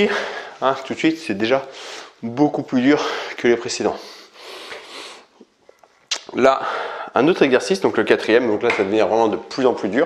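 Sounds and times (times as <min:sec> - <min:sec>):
man breathing out heavily: 0:06.6 - 0:07.2.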